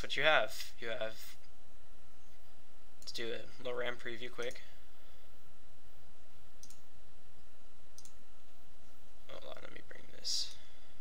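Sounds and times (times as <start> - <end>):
computer mouse clicks: 4.4 - 4.6, 6.6 - 6.8, 8.0 - 8.2.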